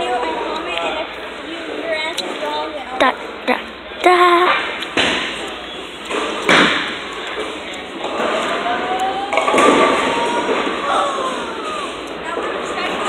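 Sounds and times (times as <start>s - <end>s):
bowling ball rolling: 4.6s - 13.0s
bowling pins crashing: 6.1s - 13.0s.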